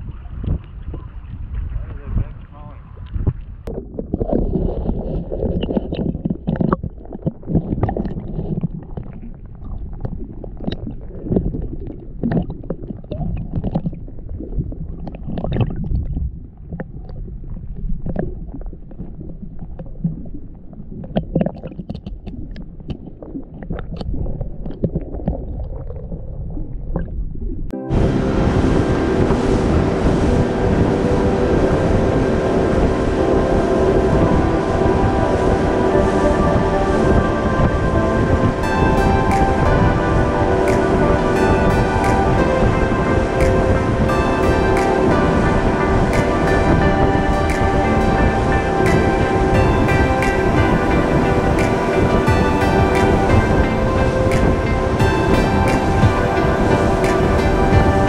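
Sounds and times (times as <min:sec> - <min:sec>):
muffled underwater water: 0:00.0 - 0:58.0
music: 0:27.8 - 0:58.0.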